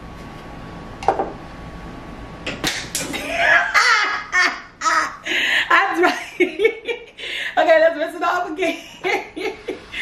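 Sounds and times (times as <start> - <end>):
woman laughing: 3.1 - 7.2, 8.6 - 10.0.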